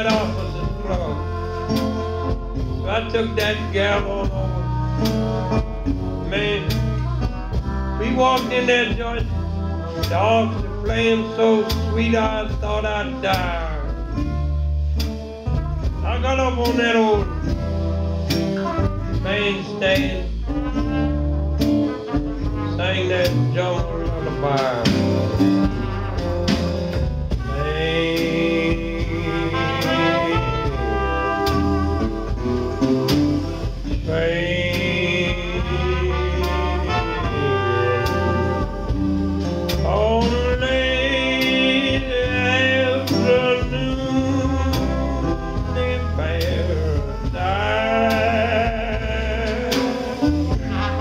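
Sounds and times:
jazz blues band playing: 0:00.0 - 0:51.0.

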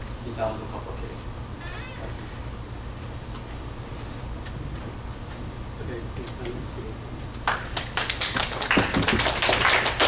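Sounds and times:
audience applauding: 0:07.4 - 0:10.0.

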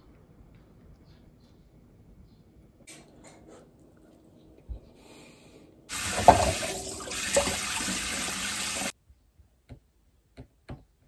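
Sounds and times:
tap water running into sink: 0:05.9 - 0:08.9.

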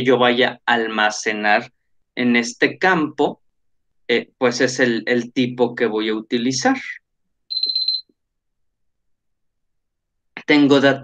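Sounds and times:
high-pitched electronic beep: 0:07.5 - 0:08.1.

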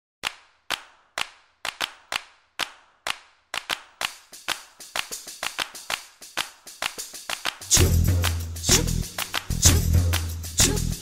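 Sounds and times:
sharp reverberant percussive hits: 0:02.6 - 0:11.0.

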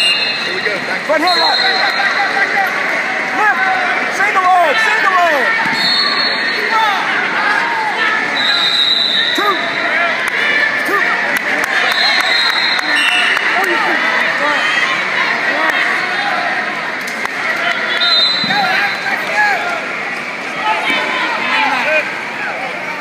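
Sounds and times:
crowd shouting and calling: 0:00.0 - 0:23.0.

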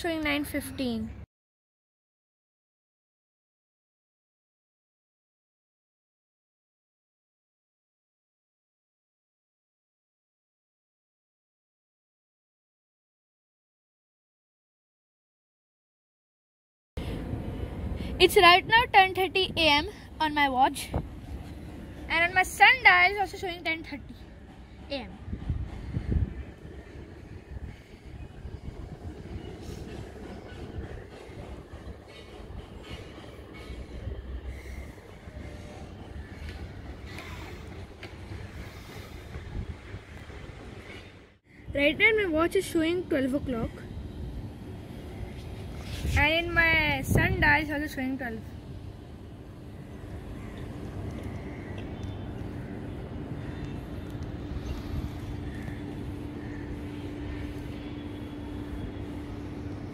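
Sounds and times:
low city rumble: 0:00.0 - 0:01.3, 0:17.0 - 0:59.9.

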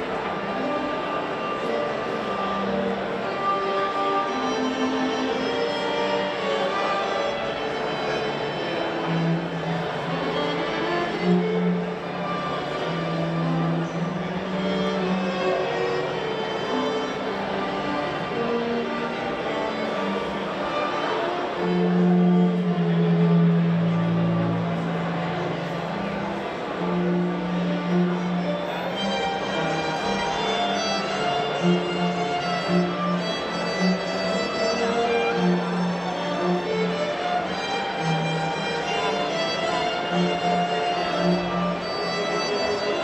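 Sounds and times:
string ensemble playing: 0:00.0 - 0:43.0.

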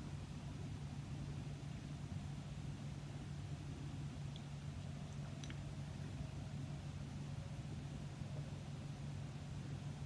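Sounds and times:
background hiss: 0:00.0 - 0:10.0
low hum: 0:00.0 - 0:10.0.

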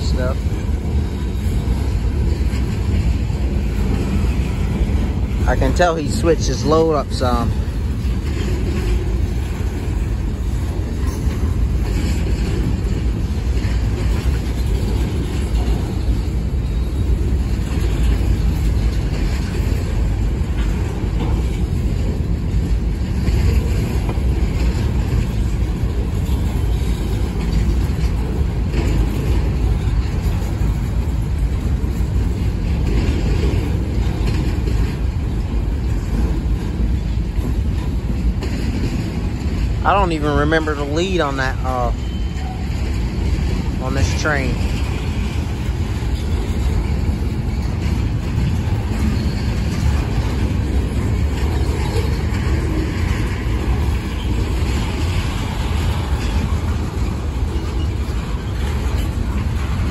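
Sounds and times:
steel wheels rumbling on rails: 0:00.0 - 0:59.9.

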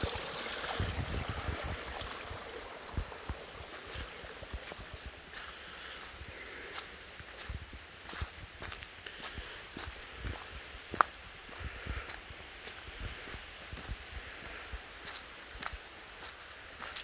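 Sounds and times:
footsteps on forest ground: 0:02.4 - 0:17.0.

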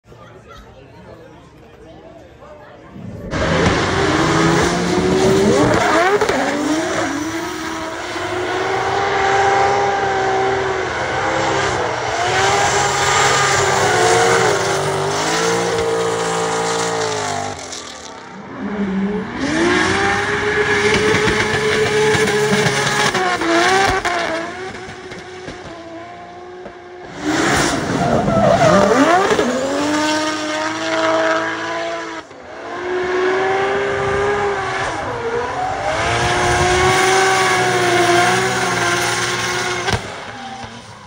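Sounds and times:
car engine revving high: 0:02.9 - 0:41.0.

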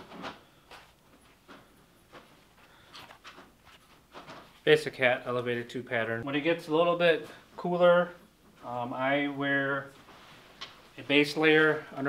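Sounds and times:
cap rustling in hands: 0:00.0 - 0:04.7.

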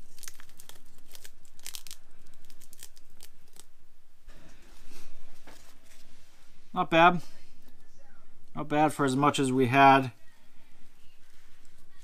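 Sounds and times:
tape being peeled off: 0:00.0 - 0:03.7
rustling: 0:00.0 - 0:07.8.

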